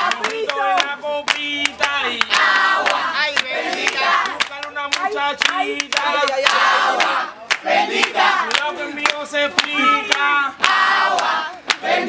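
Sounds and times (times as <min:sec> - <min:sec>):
people clapping a rhythm: 0:00.0 - 0:12.0
voices singing together: 0:00.0 - 0:12.0.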